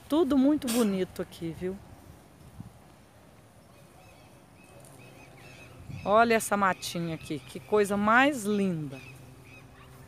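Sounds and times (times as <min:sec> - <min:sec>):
faint outdoor ambience: 0:00.0 - 0:10.0
high-pitched bird calls: 0:03.6 - 0:10.0.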